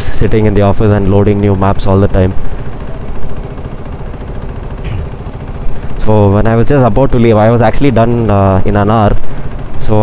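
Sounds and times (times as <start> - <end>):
surrounding traffic engines running: 0.0 - 10.0
motorcycle engine idling: 2.4 - 8.2.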